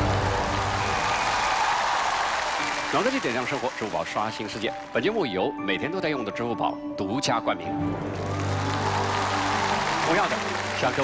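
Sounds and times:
theme music with sustained chords: 0.0 - 1.4, 2.4 - 11.0
studio audience applauding: 0.0 - 5.3, 8.0 - 11.0.

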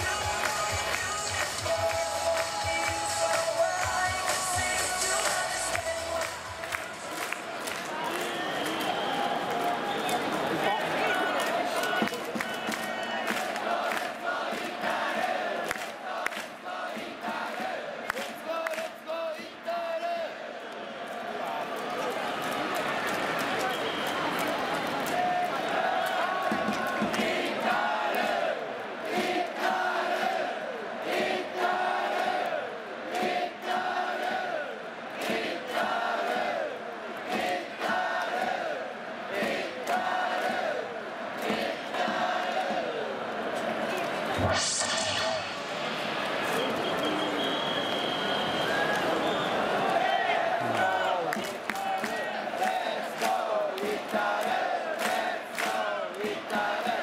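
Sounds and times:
rhythmic clapping: 0.0 - 19.0, 22.0 - 28.4, 35.1 - 38.7, 39.3 - 43.0, 49.8 - 57.0
crowd chanting in unison: 0.0 - 21.7, 24.9 - 57.0.

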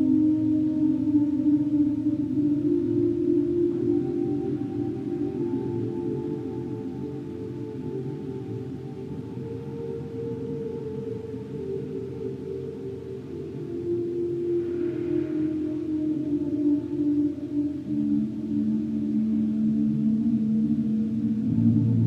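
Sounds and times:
drone-like electric guitar: 0.0 - 22.0.

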